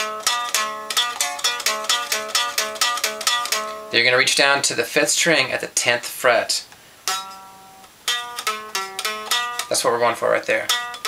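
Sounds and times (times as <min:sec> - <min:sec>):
clean electric guitar notes: 0:07.1 - 0:09.7.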